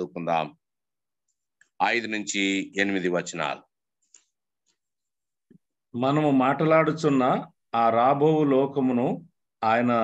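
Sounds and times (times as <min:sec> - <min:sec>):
man speaking over video call: 0:00.0 - 0:03.9, 0:05.8 - 0:10.0.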